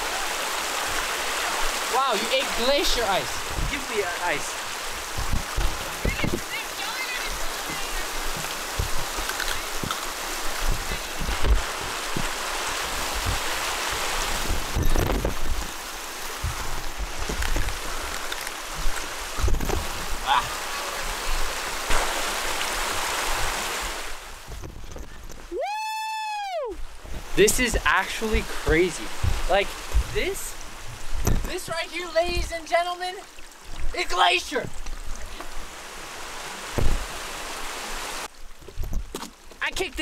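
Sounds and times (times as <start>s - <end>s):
meltwater rushing: 0.0s - 24.7s, 25.5s - 38.7s
wind thumping on microphone: 3.2s - 6.6s, 7.2s - 20.3s, 21.3s - 25.5s, 26.8s - 32.5s, 36.7s - 37.2s.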